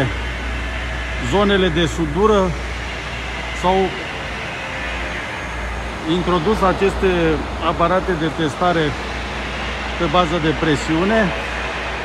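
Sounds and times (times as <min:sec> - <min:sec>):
deep mechanical drone: 0:00.0 - 0:12.0.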